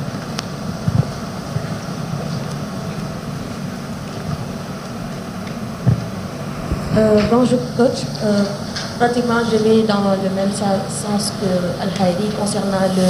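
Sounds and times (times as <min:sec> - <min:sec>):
background hum and murmur: 0:00.0 - 0:13.0.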